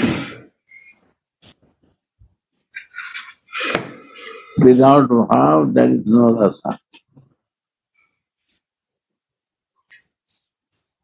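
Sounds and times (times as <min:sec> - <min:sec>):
person laughing: 0:02.7 - 0:04.6
person breathing: 0:03.5 - 0:04.6.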